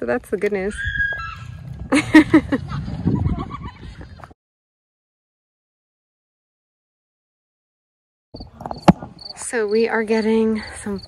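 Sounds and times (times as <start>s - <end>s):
wind rumble on microphone: 0.0s - 4.4s, 8.4s - 9.4s
person laughing: 1.9s - 3.9s.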